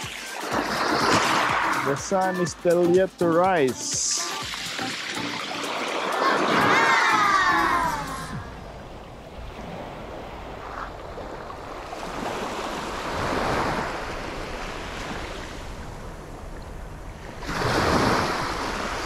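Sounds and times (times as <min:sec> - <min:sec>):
small waves washing onto shore: 0:00.0 - 0:19.0.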